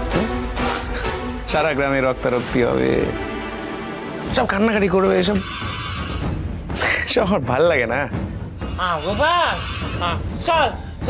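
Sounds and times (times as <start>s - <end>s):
tv drama background music: 0.0s - 11.0s.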